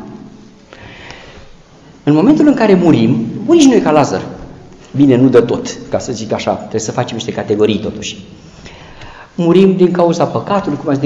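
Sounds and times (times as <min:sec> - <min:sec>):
person breathing in: 0:00.7 - 0:01.6, 0:08.4 - 0:09.4.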